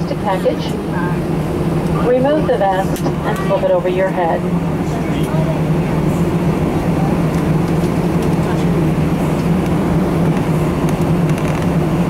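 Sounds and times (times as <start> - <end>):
air-conditioning hum: 0.0 - 12.0
jet engines at low power: 0.0 - 12.0.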